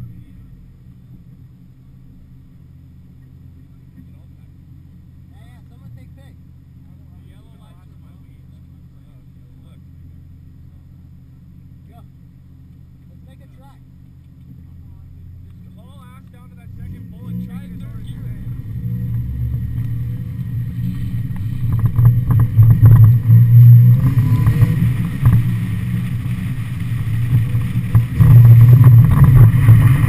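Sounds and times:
car engine idling and revving: 0.0s - 30.0s
tyre noise on wet pavement: 16.8s - 30.0s
wind noise: 18.4s - 30.0s.

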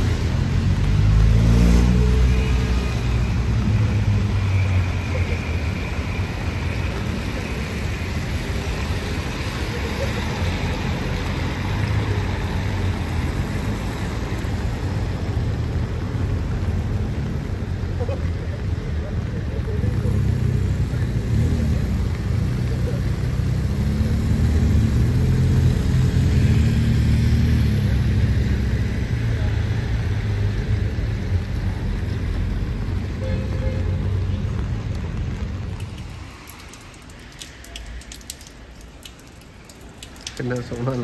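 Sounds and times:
vehicle engines: 0.0s - 41.0s
light ticks: 35.7s - 41.0s.

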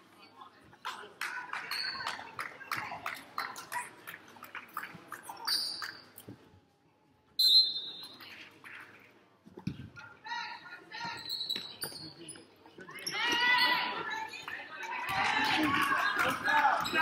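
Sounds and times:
sneaker squeaks: 5.4s - 6.4s, 7.4s - 8.4s, 11.0s - 14.5s.

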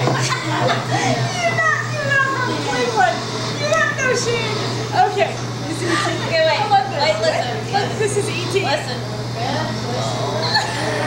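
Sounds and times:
excited chatter: 0.0s - 11.0s
steady low hum: 0.0s - 11.0s
women laughing and shrieking: 10.4s - 11.0s.

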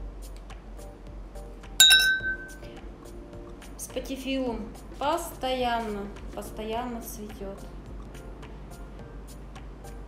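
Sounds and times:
soft background music: 0.0s - 10.0s
bright ding chime: 1.8s - 2.6s.

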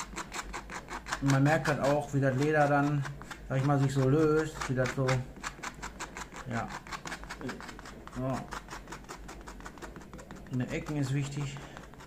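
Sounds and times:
knife scraping leather: 0.0s - 12.0s.

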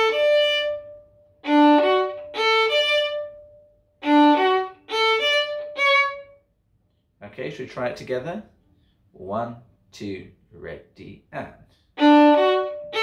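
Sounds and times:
solo violin phrase: 0.0s - 6.5s, 12.0s - 13.0s.

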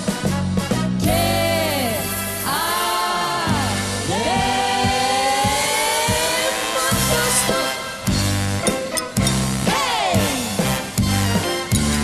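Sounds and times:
live pop band with orchestra: 0.0s - 12.0s
singers holding long note: 1.0s - 7.8s.

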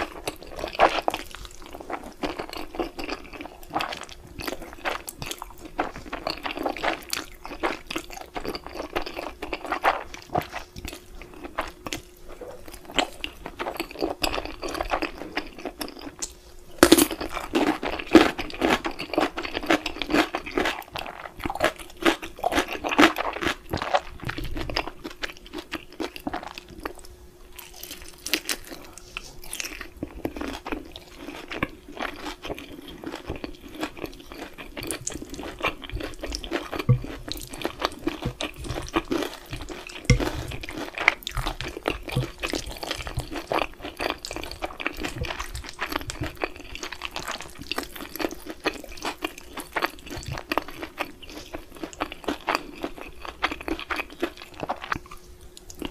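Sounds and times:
person chewing and crunching: 0.0s - 55.9s.

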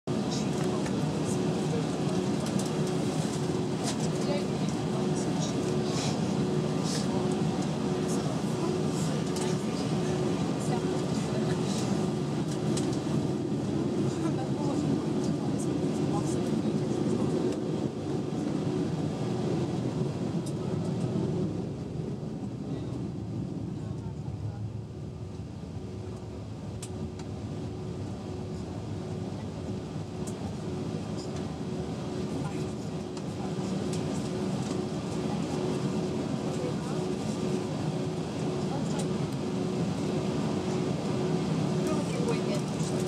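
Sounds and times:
aircraft cabin hum: 0.1s - 43.0s.

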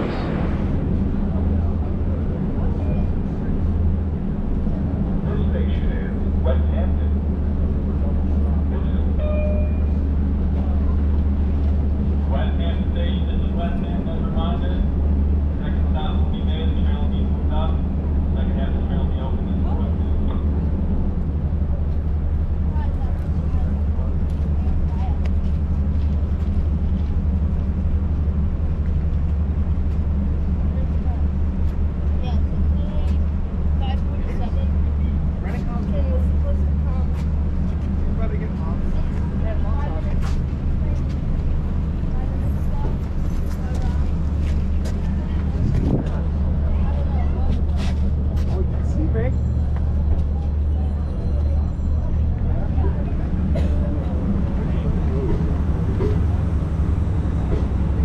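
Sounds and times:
people's voices: 0.0s - 27.9s, 29.4s - 58.0s
diesel train idling: 0.0s - 58.0s.

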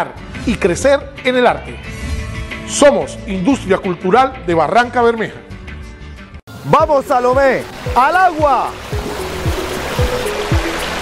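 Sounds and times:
background music with deep drum beat: 2.0s - 11.0s
water rushing in boat wake: 7.5s - 11.0s.

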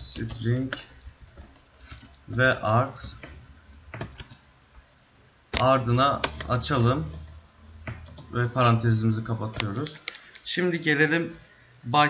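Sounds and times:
computer keyboard keystrokes: 0.0s - 4.8s, 5.5s - 7.3s, 7.9s - 8.4s, 9.5s - 10.4s.

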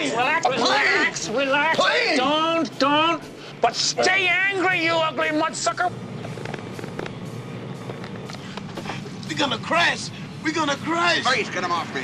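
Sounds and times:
light aircraft engine drone: 4.7s - 12.0s.

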